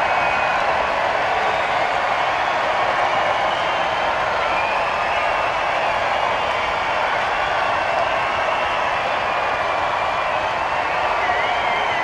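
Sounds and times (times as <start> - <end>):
crowd of many voices: 0.0 - 12.0.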